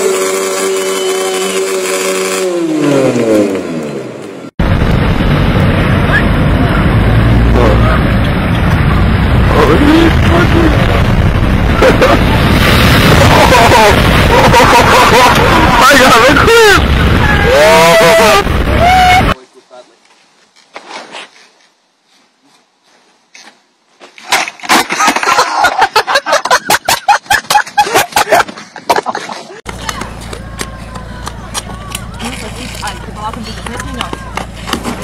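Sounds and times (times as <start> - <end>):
rushing water and wind: 8.1 - 19.4
people yelling: 13.1 - 19.4, 29.8 - 34.6
faint voices: 29.7 - 34.7.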